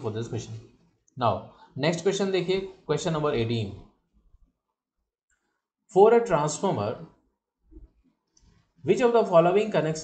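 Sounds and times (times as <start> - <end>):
man talking: 0.0 - 3.9, 5.9 - 7.2, 8.8 - 10.0.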